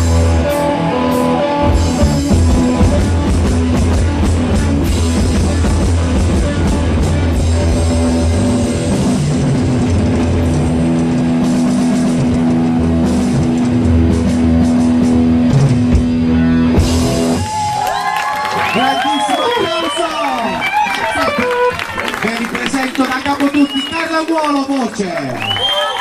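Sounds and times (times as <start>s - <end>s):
live rock band playing: 0.0s - 24.0s
audience cheering: 17.1s - 26.0s
audience whistling: 17.4s - 22.3s, 23.4s - 24.3s, 25.3s - 26.0s.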